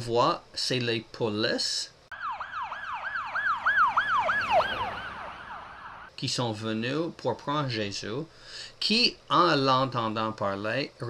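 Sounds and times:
police siren yelping: 2.1 - 6.1.

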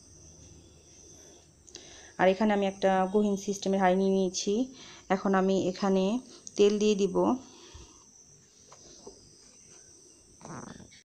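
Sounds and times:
faint high-pitched hiss: 0.0 - 11.0.

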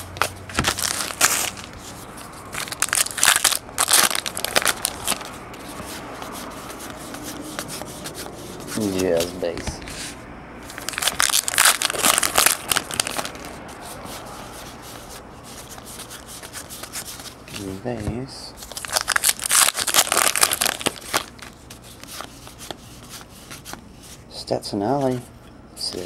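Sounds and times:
wrapper crinkling: 0.5 - 5.3, 10.7 - 13.6, 18.6 - 22.7
foil pack tearing: 0.6 - 1.7, 2.6 - 5.3, 10.8 - 13.5, 18.6 - 22.1.

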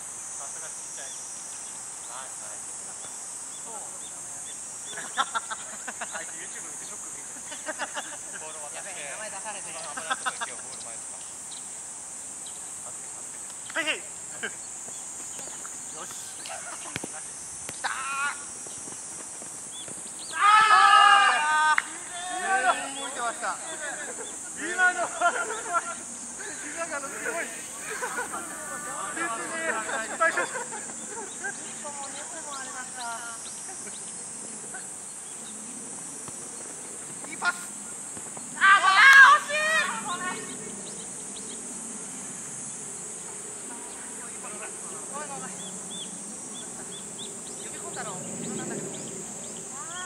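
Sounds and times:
cicadas droning: 0.0 - 50.0
person shouting high-pitched: 38.6 - 40.4.

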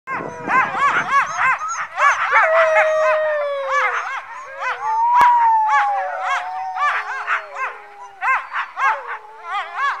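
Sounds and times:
dogs howling: 0.1 - 10.0
dogs yelping: 0.1 - 10.0.

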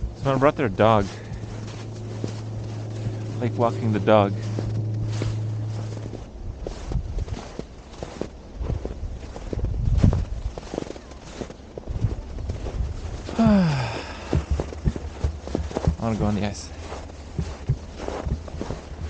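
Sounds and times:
footsteps crunching through snow: 0.0 - 19.0
person vocal sound falling in pitch: 13.3 - 14.4.

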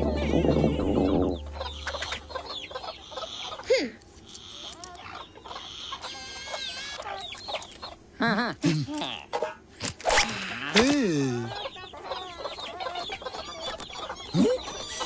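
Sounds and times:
sliding cartoon sound effects: 0.0 - 2.6
cartoon music: 0.0 - 3.2
hen clucking and squawking: 0.0 - 3.7, 4.4 - 8.0, 11.4 - 15.0.

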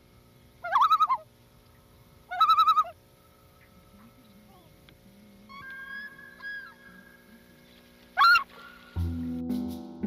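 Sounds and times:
thin whistled bird calls: 0.6 - 4.7, 5.5 - 9.0.

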